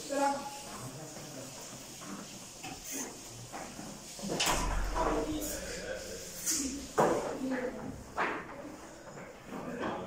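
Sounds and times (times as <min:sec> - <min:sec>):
boys talking and calling: 0:00.0 - 0:01.6, 0:04.3 - 0:10.0.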